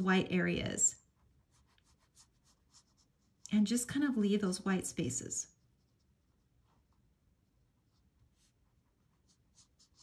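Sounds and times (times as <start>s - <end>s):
brush swishing across paper: 0.8s - 3.5s, 5.4s - 10.0s.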